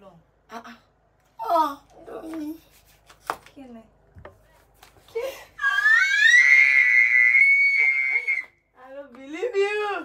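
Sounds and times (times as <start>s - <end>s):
woman screaming: 5.6s - 8.5s.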